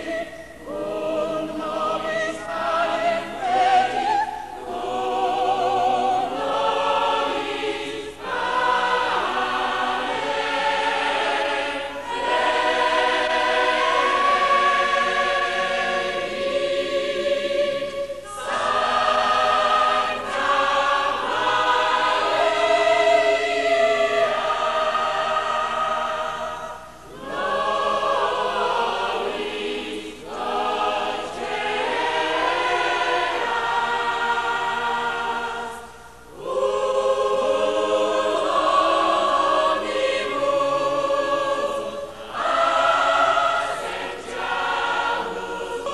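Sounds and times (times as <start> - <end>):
choir singing: 0.0 - 45.9.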